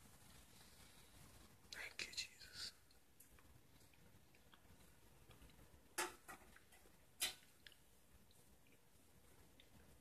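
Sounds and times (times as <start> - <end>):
person whispering: 1.7 - 3.0.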